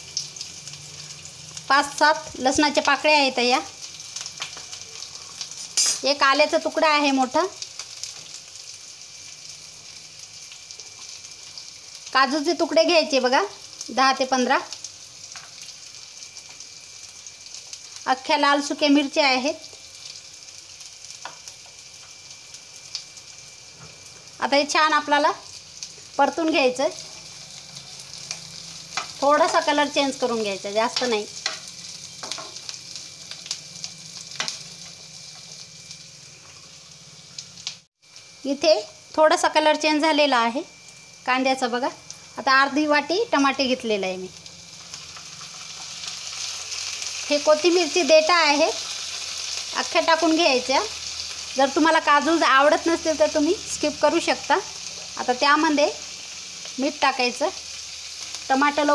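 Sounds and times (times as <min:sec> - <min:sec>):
onions frying in oil: 0:00.0 - 0:58.9
spoon scraping and tapping pan: 0:05.8 - 0:06.1.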